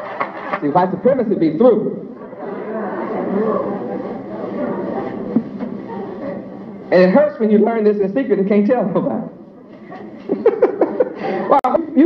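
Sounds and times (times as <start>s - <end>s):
many overlapping voices: 0.0s - 12.0s.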